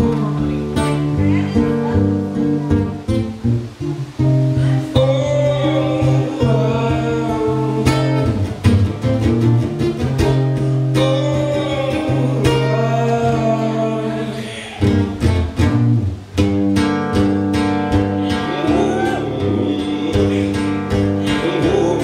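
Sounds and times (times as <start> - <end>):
solo guitar plucked and strummed: 0.0 - 22.0.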